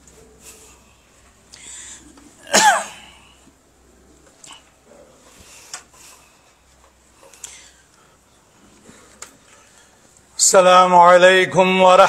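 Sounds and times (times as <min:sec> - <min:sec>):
person coughing: 0:02.4 - 0:03.4.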